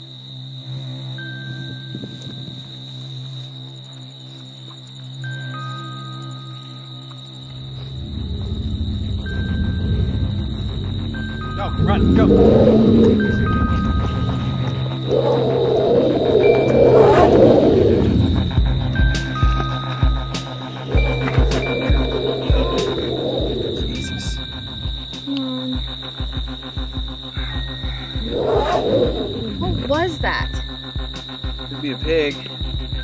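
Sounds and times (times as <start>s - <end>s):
horror score drone: 0.0s - 33.0s
pulsing low beats: 7.4s - 33.0s.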